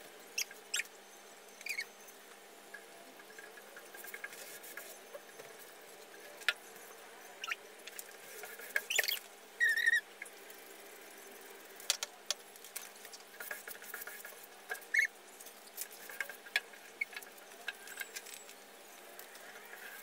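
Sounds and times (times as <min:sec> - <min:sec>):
squeegee squeaking on glass: 0:01.6 - 0:02.0, 0:08.8 - 0:10.0, 0:14.7 - 0:15.1.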